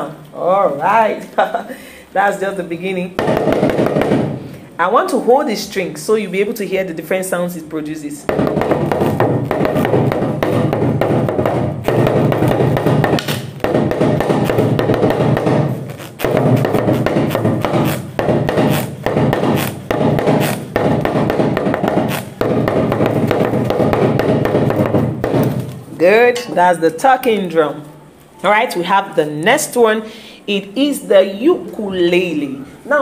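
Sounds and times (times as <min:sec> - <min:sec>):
talking drum played with stick: 0:08.2 - 0:25.5.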